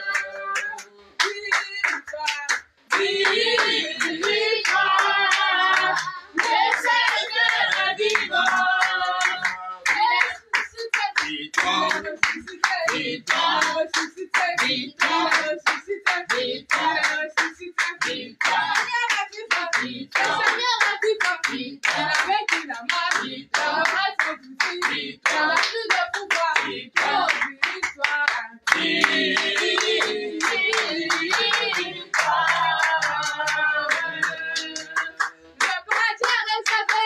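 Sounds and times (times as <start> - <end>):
congregation singing: 0.0 - 37.0
rhythmic hand clapping: 0.0 - 37.0.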